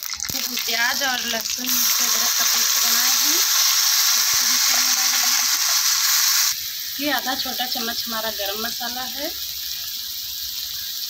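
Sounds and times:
paste sizzling in hot oil: 0.0s - 11.0s.

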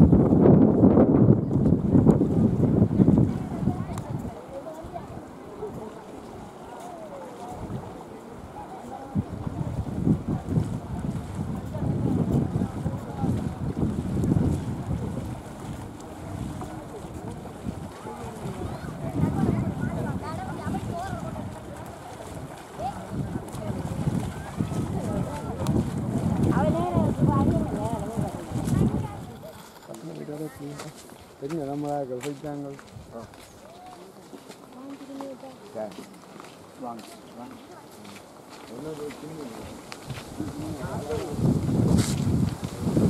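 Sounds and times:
wind buffeting microphone: 0.0s - 6.6s, 7.4s - 32.0s, 39.3s - 43.0s.

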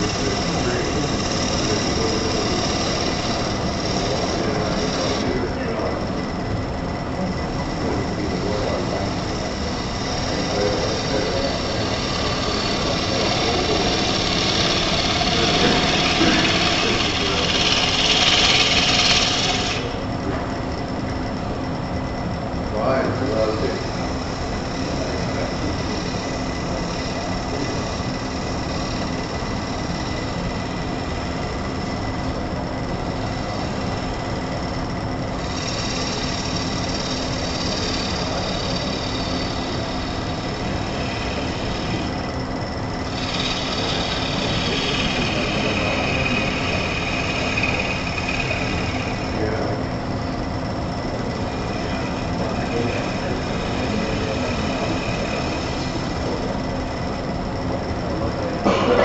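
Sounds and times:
turning tool cutting wood: 0.0s - 21.2s, 22.7s - 58.2s
wood lathe humming: 0.0s - 59.0s.

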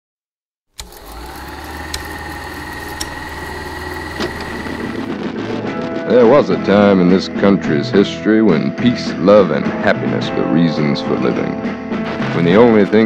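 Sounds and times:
sharp clicks: 0.8s - 5.1s
film projector whirring: 0.8s - 5.2s.

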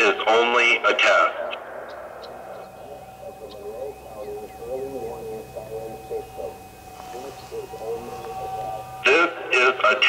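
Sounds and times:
distant siren announcement voice: 0.0s - 10.0s
steady faint tone: 0.2s - 10.0s.

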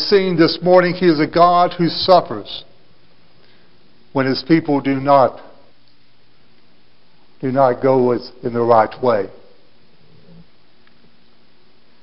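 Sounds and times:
even hiss with faint hum: 0.0s - 12.0s.

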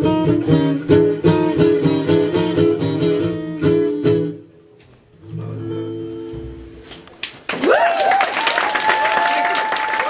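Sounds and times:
audience applause and cheering: 7.4s - 10.0s
crowd whooping: 7.5s - 10.0s.

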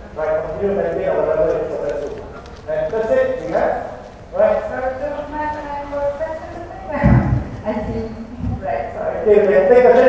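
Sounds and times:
man speaking over public address: 0.0s - 7.1s, 7.8s - 10.0s.

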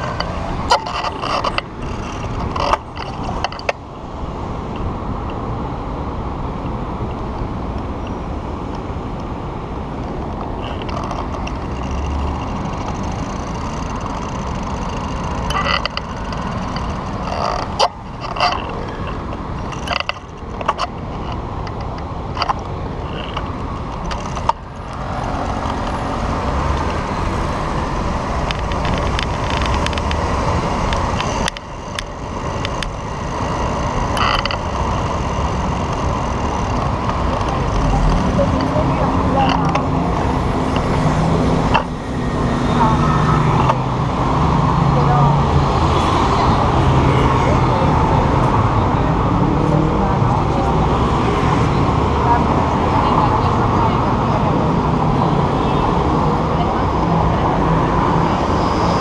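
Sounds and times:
road traffic noise: 0.0s - 59.0s.

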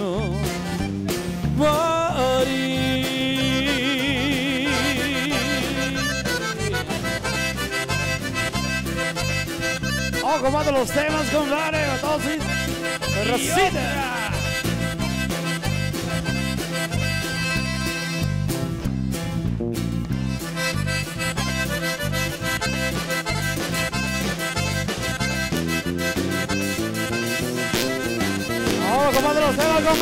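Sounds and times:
drums: 0.0s - 10.8s, 13.7s - 30.0s
button accordion: 0.0s - 30.0s
stepping bass line: 0.0s - 30.0s.

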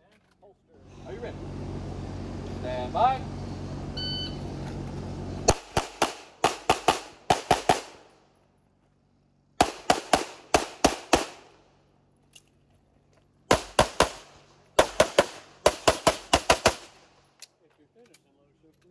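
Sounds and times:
pistol shots in fast strings: 5.5s - 8.0s, 13.5s - 16.8s.

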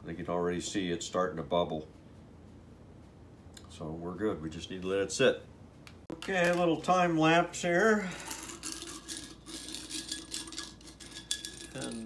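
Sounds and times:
faint steady hum: 0.0s - 12.0s
screws clinking in glass jar: 8.1s - 12.0s.

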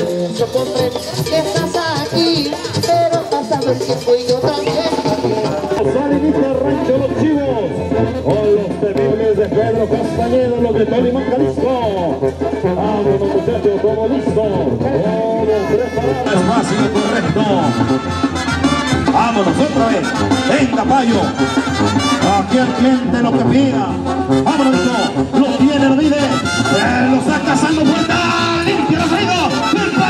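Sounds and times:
brass band music: 0.0s - 30.0s
voices: 0.0s - 30.0s.

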